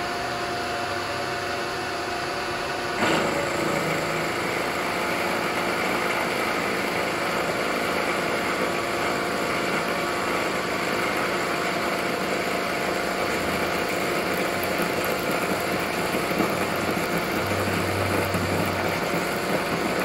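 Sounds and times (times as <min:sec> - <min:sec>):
milling machine cutting metal: 0:02.6 - 0:20.0.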